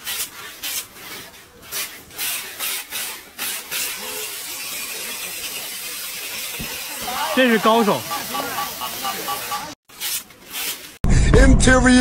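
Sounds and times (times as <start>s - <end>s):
packing tape ripping off dispenser: 1.7s - 4.6s, 9.9s - 11.0s.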